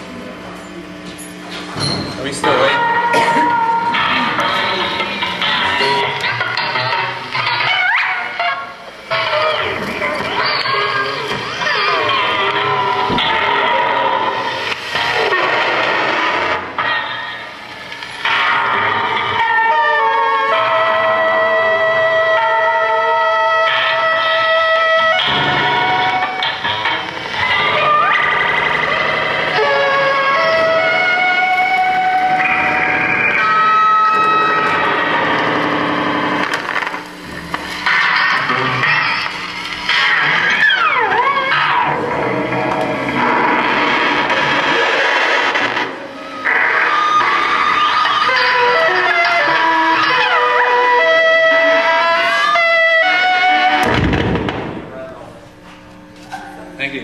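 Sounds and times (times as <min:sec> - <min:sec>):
electronic noise music: 0:02.2 - 0:56.1.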